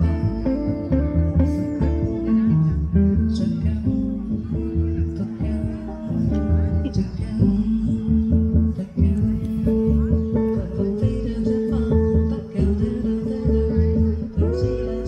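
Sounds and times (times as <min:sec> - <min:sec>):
double bass: 0:00.0 - 0:15.0
guitar: 0:00.0 - 0:15.0
woman singing: 0:00.0 - 0:15.0.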